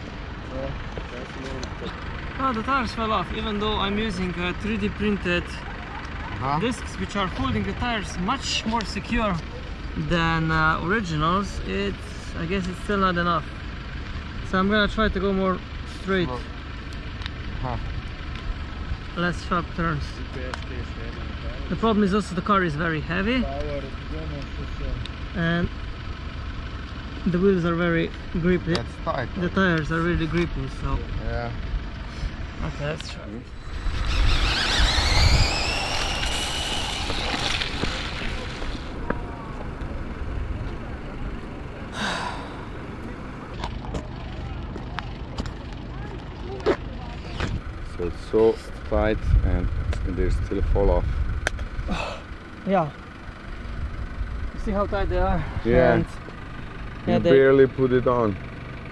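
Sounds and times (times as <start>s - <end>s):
light clicks of rubber tire: 0.8s - 2.6s, 8.1s - 9.6s, 16.8s - 17.5s, 18.2s - 18.6s, 20.3s - 21.3s, 23.5s - 25.2s, 28.0s - 29.0s, 42.9s - 47.7s, 49.8s - 50.2s, 51.2s - 51.7s
electric motor whining: 33.5s - 43.6s
wind rumbling on microphone: 33.6s - 41.7s, 49.0s - 51.9s
tyre rumble on asphalt: 34.8s - 39.8s.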